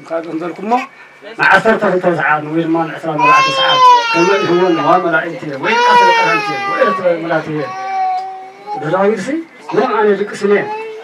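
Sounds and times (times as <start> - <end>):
man talking through a microphone: 0.0 - 11.0
baby crying: 3.2 - 9.1, 9.7 - 11.0.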